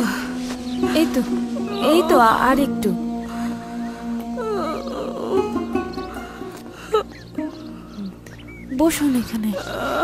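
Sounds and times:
sustained music drone: 0.0 - 10.0
woman moaning in pain: 1.6 - 2.7, 3.3 - 5.8, 9.5 - 10.0.

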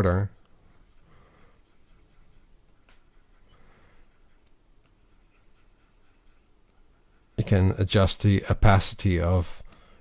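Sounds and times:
stylus scratching on drawing tablet: 0.0 - 8.2.

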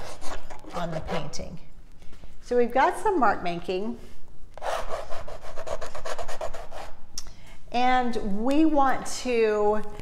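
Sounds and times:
drawing tool scribbling on canvas: 0.0 - 1.5, 4.6 - 7.0.

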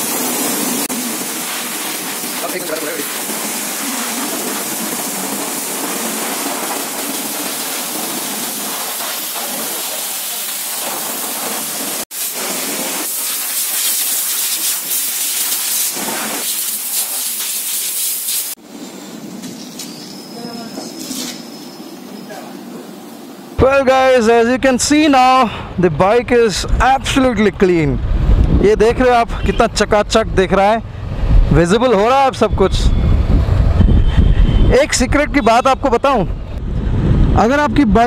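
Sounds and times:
hose water jet hissing: 0.0 - 18.6.

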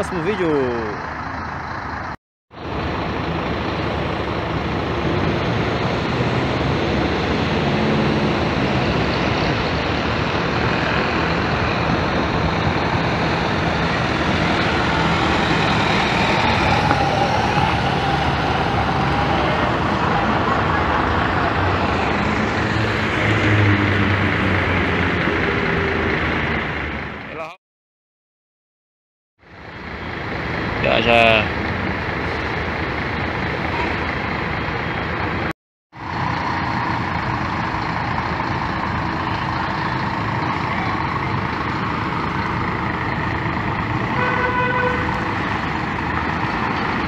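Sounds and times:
diesel bus driving past: 0.0 - 27.4, 29.4 - 47.0.

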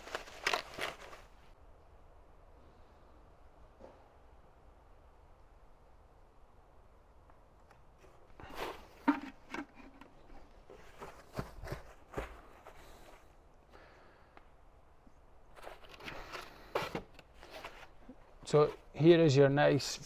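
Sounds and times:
plastic wrap crinkling: 0.0 - 1.4.

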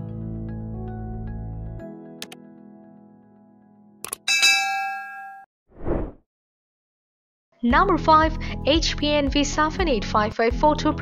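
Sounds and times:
notification bell ding: 4.3 - 5.4
rushing transition whoosh: 5.8 - 6.2.

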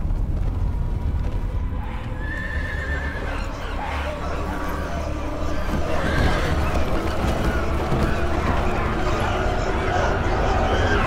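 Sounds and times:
deep steady rumble: 0.0 - 3.7
hooves pounding: 0.0 - 11.0
horses whinnying: 1.8 - 11.0.

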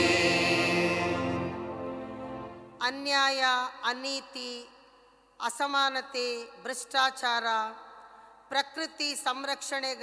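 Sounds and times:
choir singing: 0.0 - 2.7
keyboard accompaniment: 0.0 - 2.8.

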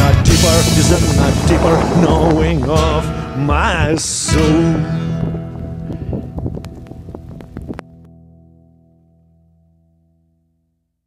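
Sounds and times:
wind buffeting microphone: 0.8 - 8.0.

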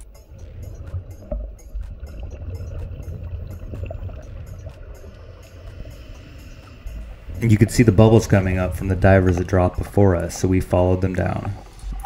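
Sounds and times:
faint underwater clicks: 0.0 - 12.0
low rumble of moving water: 0.0 - 12.0.

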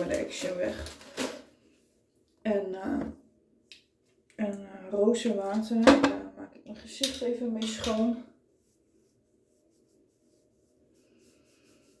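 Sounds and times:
cotton pad rubbing skin: 8.4 - 12.0.

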